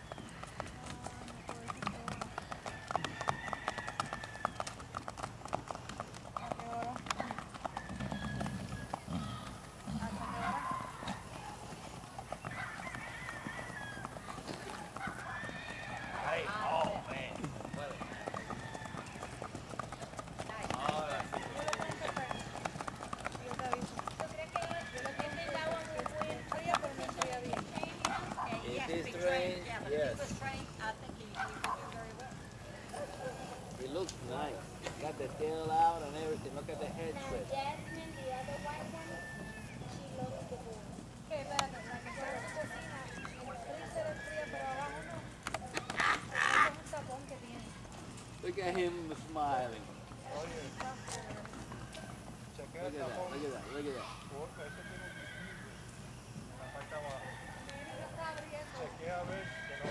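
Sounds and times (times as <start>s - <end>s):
horse hooves clip-clopping on sand: 0.0s - 54.6s, 55.3s - 59.9s.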